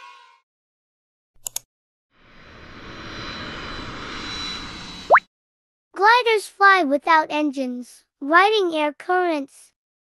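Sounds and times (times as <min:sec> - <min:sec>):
aircraft engine whine: 0:02.2 - 0:05.1.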